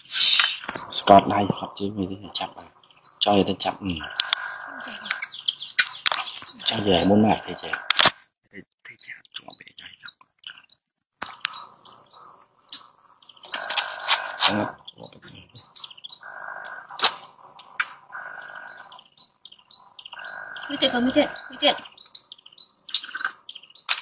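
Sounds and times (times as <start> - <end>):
baby monkeys squeaking: 2.7 - 7.9, 10.4 - 23.9.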